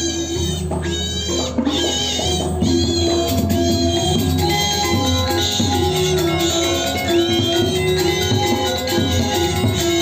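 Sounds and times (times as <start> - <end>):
gamelan music: 0.0 - 10.0.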